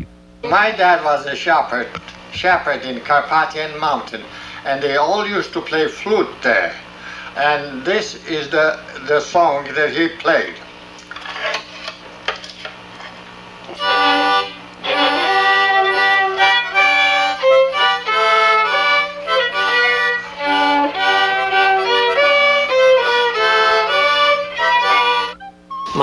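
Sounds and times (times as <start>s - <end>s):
harmonica: 13.7s - 26.0s
violin: 13.8s - 26.0s.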